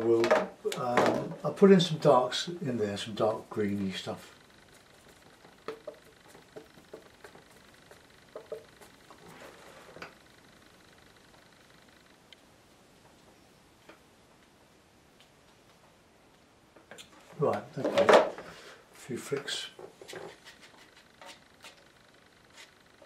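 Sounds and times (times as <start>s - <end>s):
paintbrush scrubbing on palette: 3.2s - 10.0s, 20.0s - 22.8s.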